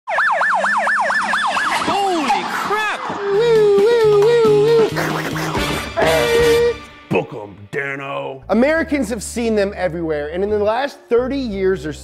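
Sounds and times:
police car siren yelp: 0.1 - 4.2.

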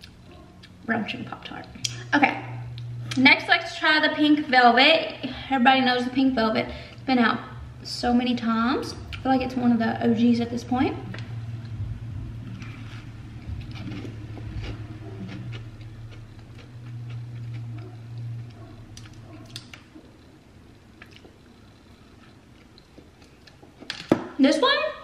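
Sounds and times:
low steady hum: 0.0 - 25.0
person chewing: 12.5 - 23.8.

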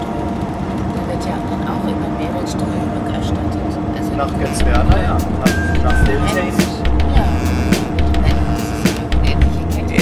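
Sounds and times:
steady two-tone hum: 0.0 - 10.0
indistinct voices: 0.9 - 10.0.

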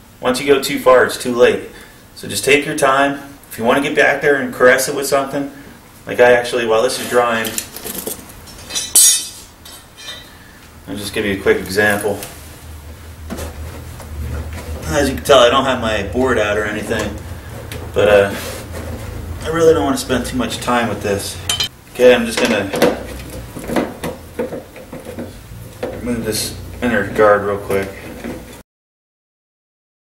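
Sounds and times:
sharp metallic clink: 8.7 - 10.2, 21.5 - 21.7.

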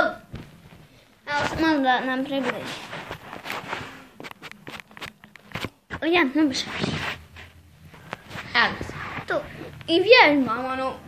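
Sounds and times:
phone microphone handling rustling: 0.3 - 9.9.

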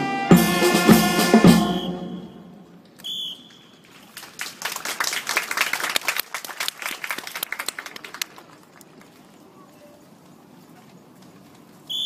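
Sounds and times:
short high whistle blast: 0.0 - 3.8
audience clapping: 3.8 - 9.1.

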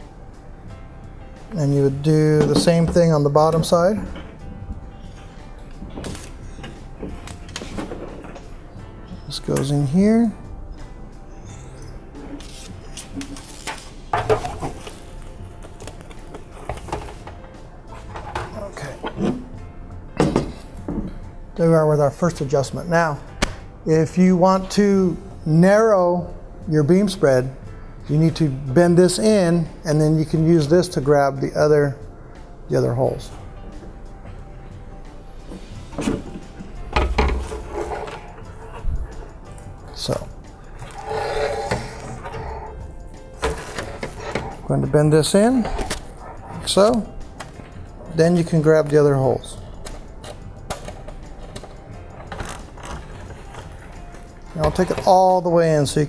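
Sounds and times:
background music: 0.0 - 56.0
metal sheet rustling: 35.5 - 39.4.

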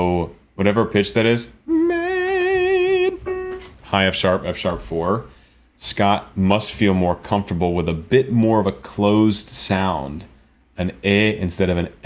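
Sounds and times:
person singing high note with vibrato: 1.7 - 3.8.

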